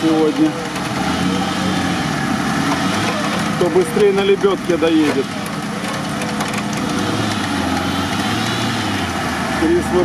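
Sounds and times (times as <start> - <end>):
off-road vehicle engine running: 0.0 - 10.0.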